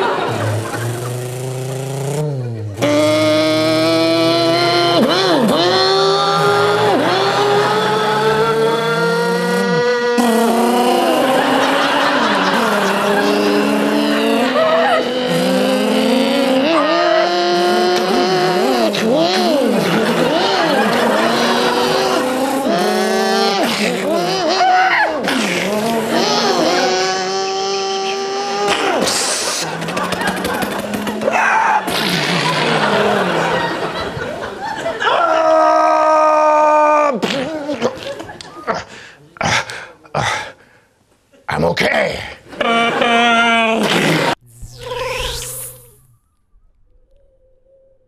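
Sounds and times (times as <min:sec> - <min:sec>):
person imitating car engine: 0:00.0 - 0:34.0, 0:42.6 - 0:46.1.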